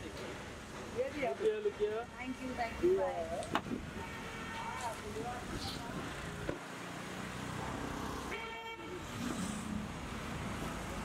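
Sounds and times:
street traffic: 0:00.0 - 0:11.0
car horn: 0:04.0 - 0:04.9, 0:08.3 - 0:09.0.

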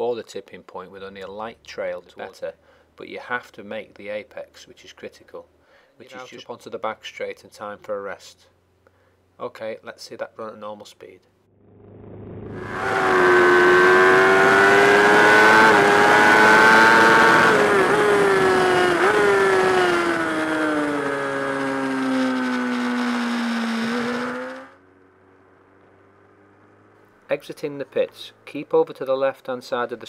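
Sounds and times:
motorcycle engine at high revs: 0:11.6 - 0:27.0.

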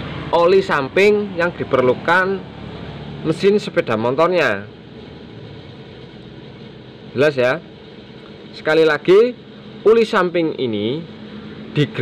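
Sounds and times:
ambient hum: 0:00.0 - 0:12.0.

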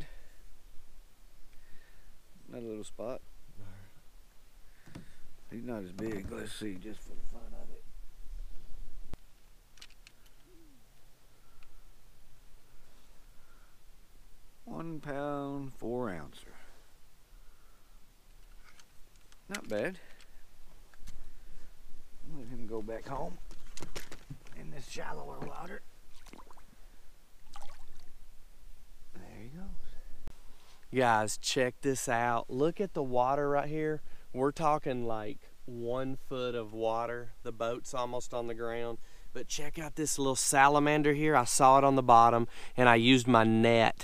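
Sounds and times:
faint low steady hum: 0:00.0 - 0:44.0
small water splash: 0:26.1 - 0:26.8, 0:27.4 - 0:28.1.

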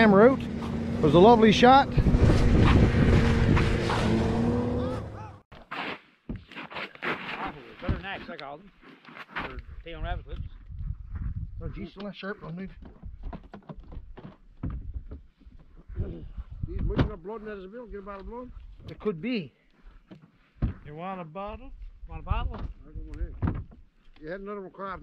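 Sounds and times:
snowmobile engine running: 0:00.0 - 0:05.4
wind noise: 0:01.6 - 0:04.6, 0:09.6 - 0:12.0, 0:12.8 - 0:17.2.

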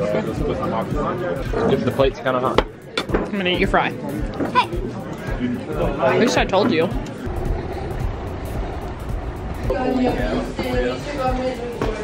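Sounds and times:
street noise rumble: 0:06.9 - 0:12.0.

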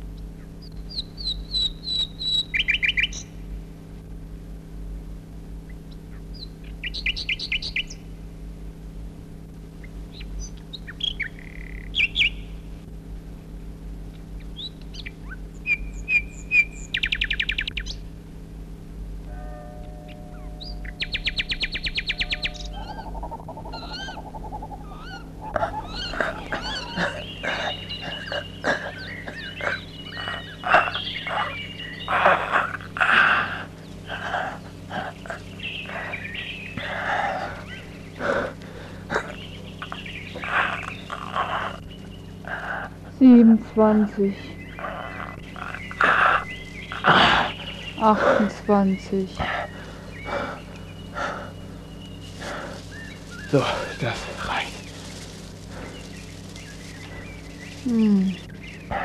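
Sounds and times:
birds calling and trilling: 0:00.0 - 0:03.9, 0:05.6 - 0:08.3, 0:09.7 - 0:13.0, 0:14.0 - 0:18.1, 0:19.3 - 0:59.0
steady low hum: 0:00.0 - 0:59.0.

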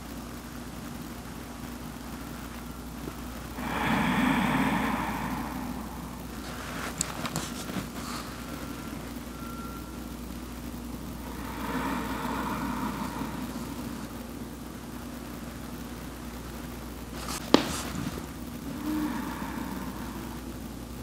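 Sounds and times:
low background hum: 0:00.0 - 0:21.0.

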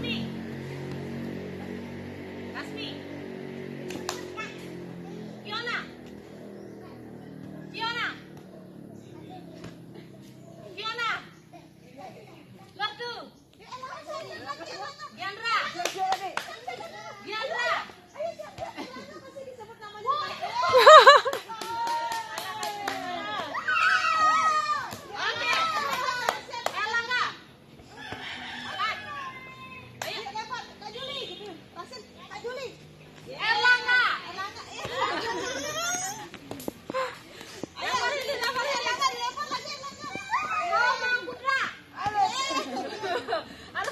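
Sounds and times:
children chattering: 0:04.2 - 0:12.8, 0:33.4 - 0:43.9.

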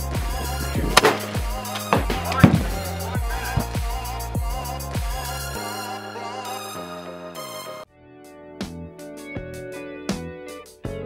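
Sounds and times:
electronic music with kick drum: 0:00.0 - 0:05.3.

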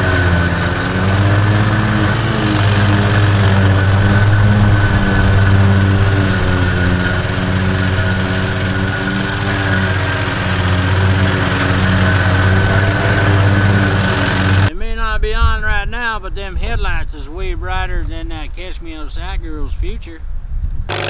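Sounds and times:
lawn mower engine running: 0:00.0 - 0:14.7.

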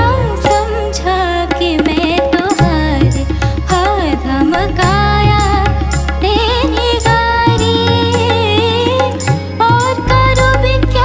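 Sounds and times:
instrumental accompaniment: 0:00.0 - 0:11.0
woman singing into microphone: 0:00.0 - 0:11.0.

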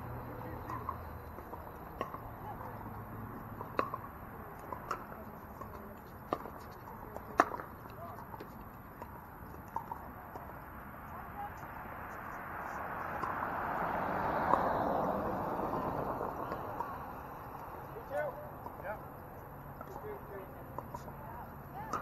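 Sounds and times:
broad wash of noise: 0:11.7 - 0:18.2.

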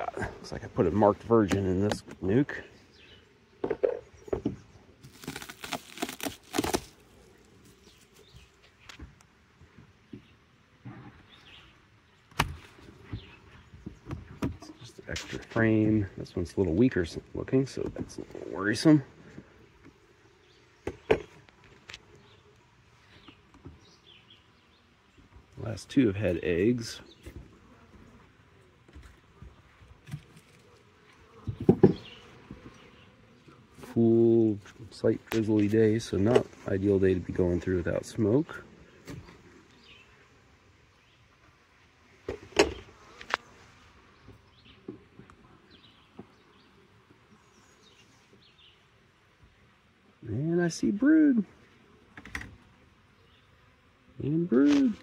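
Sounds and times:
honeybees humming: 0:00.0 - 0:55.0
hive tool knocking wooden frames: 0:20.8 - 0:21.5, 0:31.3 - 0:32.8.

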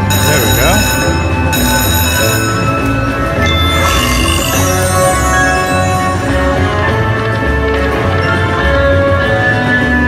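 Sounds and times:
ringing chime tones: 0:00.0 - 0:06.9
slot machine music: 0:00.0 - 0:09.0.

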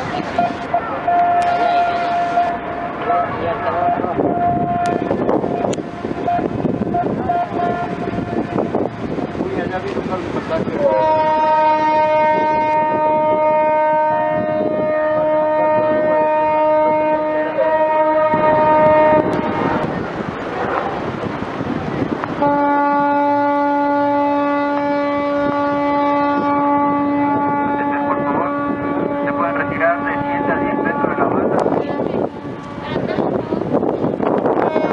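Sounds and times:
ship's horn blasts: 0:00.0 - 0:09.4, 0:10.0 - 0:34.9.

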